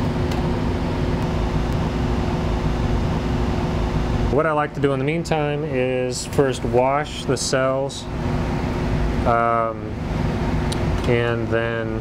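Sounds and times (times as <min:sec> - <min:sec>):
cabinet blower air rush: 0:00.0 - 0:04.4.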